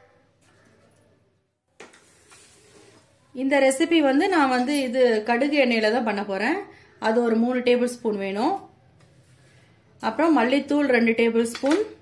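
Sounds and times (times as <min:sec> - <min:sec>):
woman speaking: 0:10.0 - 0:12.0.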